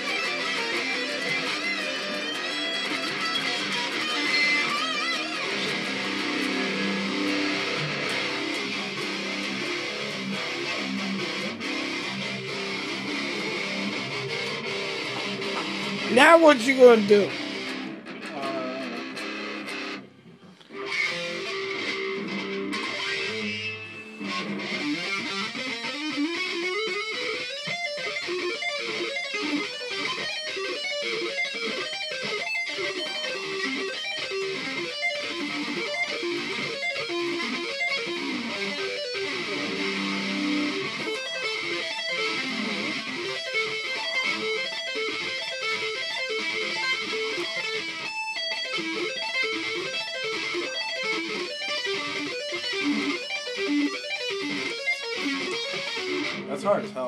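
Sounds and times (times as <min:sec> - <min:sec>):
fast electric guitar solo: 0:00.0 - 0:20.1, 0:20.7 - 0:57.0.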